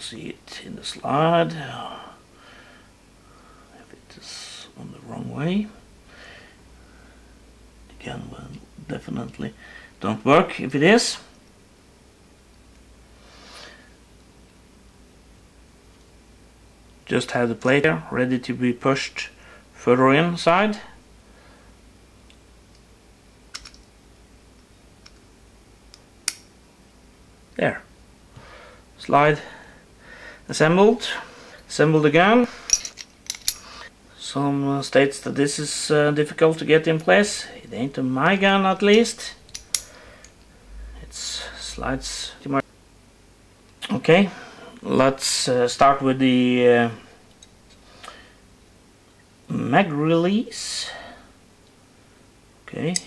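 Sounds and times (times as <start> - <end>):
faint clicks of steel parts: 23.5 - 23.9, 24.6 - 25.3, 25.9 - 26.6, 32.6 - 33.7, 38.9 - 40.5, 47.3 - 48.2
small metal clicks: 23.5 - 23.9, 25.9 - 26.5, 39.5 - 40.4.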